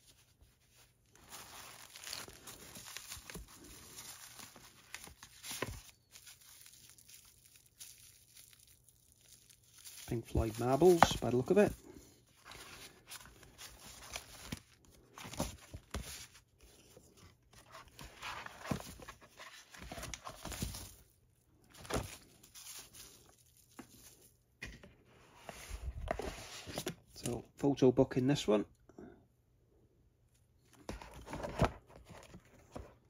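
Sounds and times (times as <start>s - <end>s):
paper and plastic rustling: 0.0s - 21.1s, 21.7s - 27.4s.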